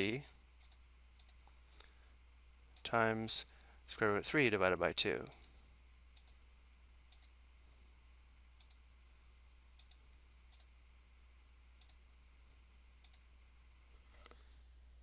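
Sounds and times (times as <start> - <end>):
faint low hum: 0.0 - 15.0
computer mouse clicks: 0.1 - 1.4, 6.2 - 6.4, 7.1 - 7.4, 8.6 - 8.8, 9.8 - 10.7, 11.8 - 12.0, 13.0 - 13.2.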